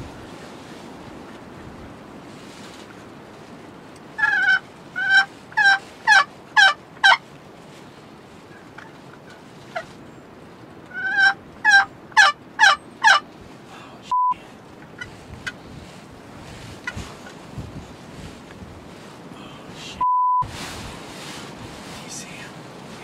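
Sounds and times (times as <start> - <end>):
turkey yelping: 4.2 - 7.2, 10.9 - 13.2
short electronic beep: 14.1 - 14.4, 20.0 - 20.5.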